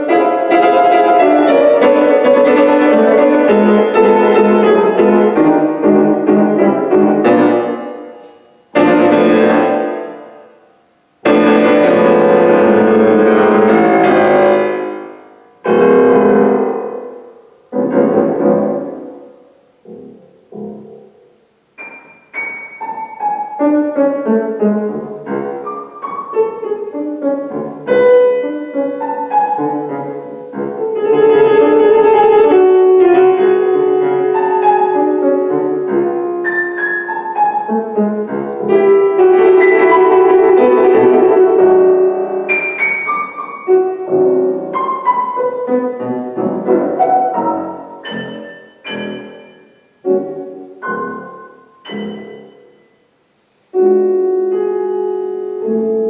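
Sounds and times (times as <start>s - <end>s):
grand piano improvisation: 0.0s - 56.0s.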